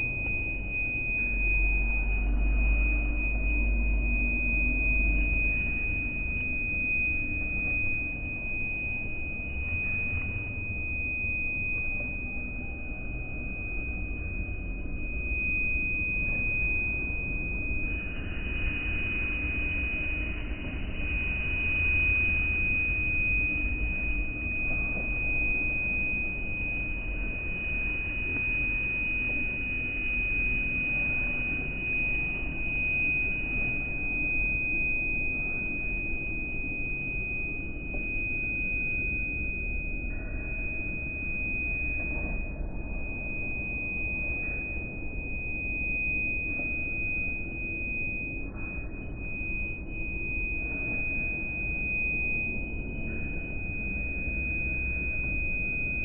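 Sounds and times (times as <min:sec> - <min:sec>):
steady high-pitched tone: 0:00.0 - 0:56.0.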